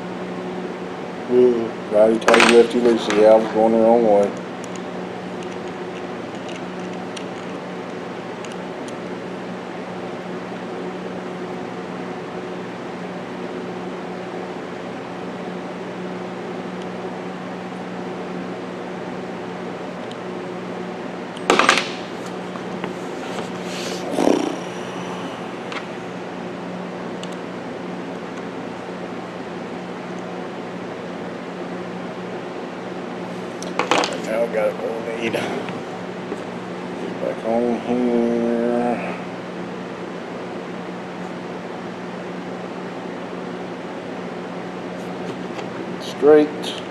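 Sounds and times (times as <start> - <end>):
fan humming: 0.0 - 46.9.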